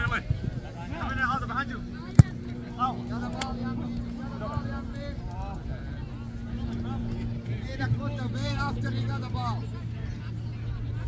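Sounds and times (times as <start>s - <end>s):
soccer ball kicked thud: 2.1s - 2.5s.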